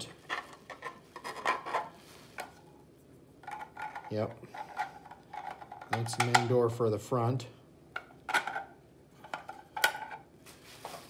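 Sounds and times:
bubble wrap rustling: 0:10.4 - 0:11.0.

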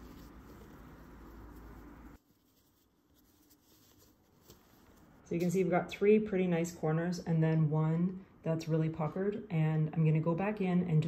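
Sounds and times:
fingers rubbing canvas fabric: 0:00.0 - 0:05.2.

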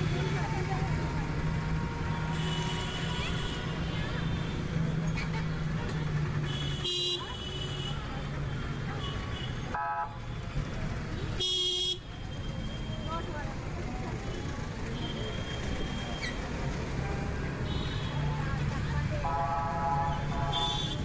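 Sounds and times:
street traffic engines: 0:00.0 - 0:21.0
vehicle horn toots: 0:19.3 - 0:21.0.

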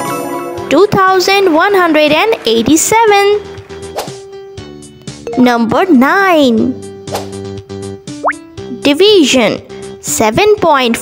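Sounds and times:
children's background music: 0:00.0 - 0:11.0
pop sound effect: 0:08.2 - 0:08.4.

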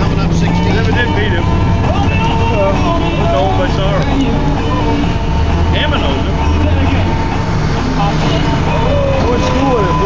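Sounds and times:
diesel engine idling: 0:00.0 - 0:10.0
people's voices: 0:00.0 - 0:10.0.

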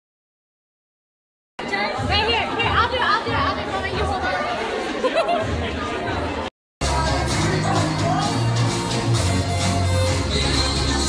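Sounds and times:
people chattering: 0:01.6 - 0:11.0
background music with bass beat: 0:06.8 - 0:11.0.

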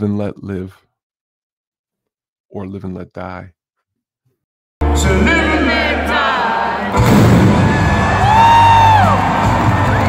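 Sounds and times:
rock band playing: 0:04.8 - 0:06.2, 0:06.8 - 0:10.0
crowd cheering: 0:04.8 - 0:10.0.

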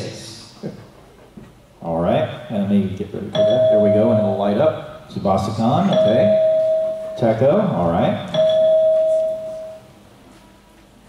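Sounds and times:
electronic chime: 0:03.4 - 0:04.4, 0:05.8 - 0:07.4, 0:08.2 - 0:09.9.

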